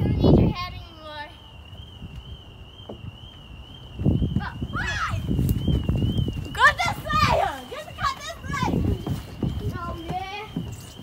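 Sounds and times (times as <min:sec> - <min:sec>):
children squealing and calling: 0:04.4 - 0:05.6, 0:06.3 - 0:11.0.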